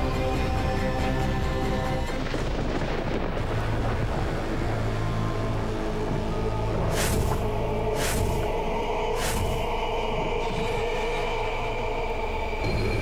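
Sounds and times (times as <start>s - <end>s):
deep rumbling drone: 0.0s - 13.0s
dramatic background score: 0.0s - 13.0s
whoosh: 6.9s - 9.8s.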